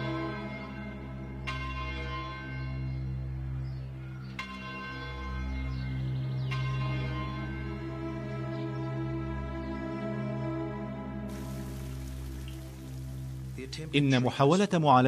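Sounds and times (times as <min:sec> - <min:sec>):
low background music: 0:00.0 - 0:15.0
church bell tolling: 0:00.1 - 0:08.2.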